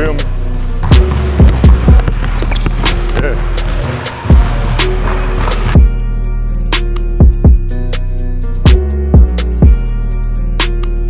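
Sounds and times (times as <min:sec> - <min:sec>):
basketball dribbling on hardwood: 0:00.8 - 0:03.4
sneakers squeaking on wood: 0:00.9 - 0:04.3.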